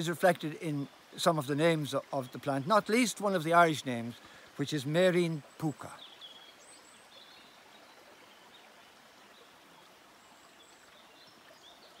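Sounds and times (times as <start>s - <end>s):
stream water running: 0.0s - 12.0s.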